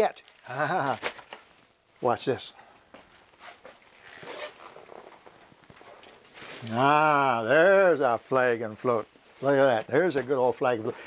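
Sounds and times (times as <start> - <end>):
faint rustling: 0.2 - 11.0.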